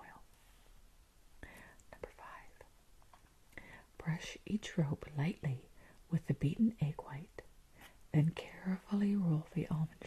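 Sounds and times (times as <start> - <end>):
woman whispering: 0.0 - 0.3, 1.4 - 2.7, 3.6 - 7.5, 8.1 - 10.0
breaths: 1.4 - 1.9, 3.5 - 4.0, 5.8 - 6.1.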